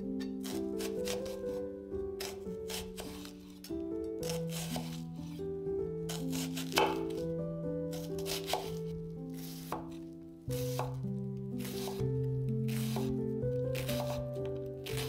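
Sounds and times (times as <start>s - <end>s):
knife slicing onion on wooden board: 0.0s - 1.6s, 2.2s - 5.4s, 6.1s - 7.3s, 7.9s - 11.0s, 11.6s - 15.0s
background music: 0.0s - 15.0s.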